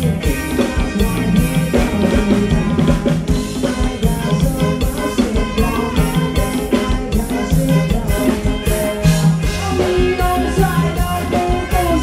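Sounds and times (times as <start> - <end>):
bass: 0.0 - 12.0
drum kit beat: 0.0 - 12.0
live band playing dance music: 0.0 - 12.0.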